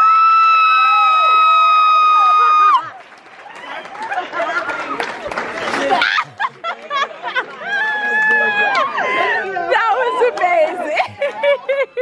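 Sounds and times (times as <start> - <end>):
excited whoops and chatter: 0.0 - 5.1, 5.8 - 6.6, 7.6 - 12.0.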